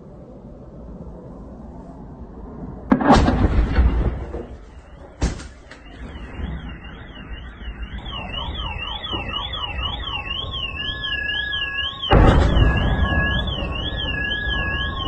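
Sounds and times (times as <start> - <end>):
low rumble: 0.0 - 15.0
loud bang: 2.9 - 6.8, 11.7 - 15.0
electronic alarm wailing: 3.7 - 15.0.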